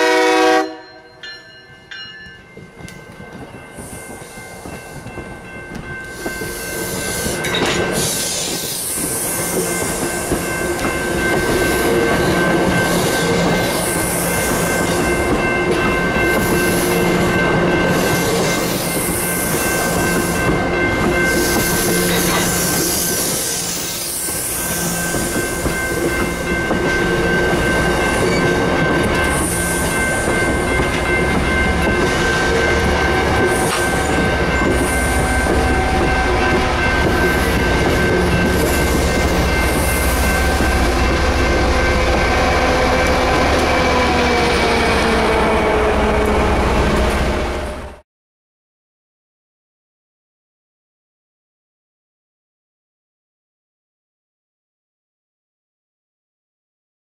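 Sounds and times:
crossing signal ringing: 0.0s - 47.4s
diesel locomotive engine drone: 1.9s - 48.0s
train wheels clacking over rails: 2.6s - 45.6s.

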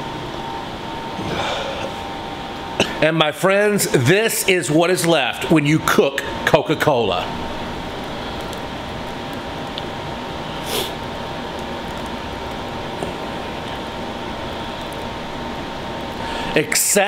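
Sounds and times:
faint steady hum: 0.0s - 17.0s.

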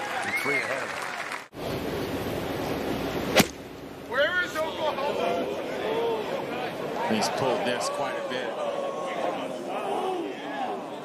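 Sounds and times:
outdoor background hiss: 0.9s - 7.9s
golf club hitting ball: 3.3s - 3.6s.

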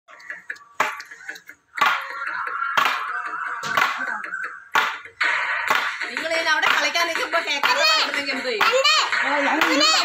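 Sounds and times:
music: 0.1s - 10.0s.

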